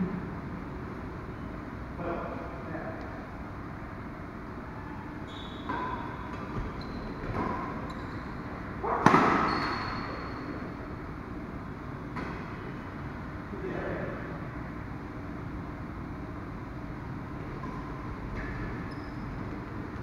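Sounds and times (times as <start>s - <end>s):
racket hitting shuttlecock: 8.8s - 9.5s.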